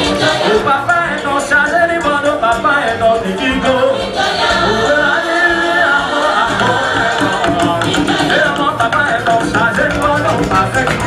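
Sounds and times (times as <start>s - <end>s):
choir singing gospel: 0.0s - 11.0s.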